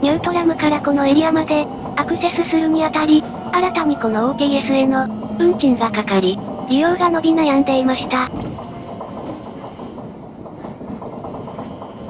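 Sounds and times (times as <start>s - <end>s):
train running rumble: 0.0s - 12.0s.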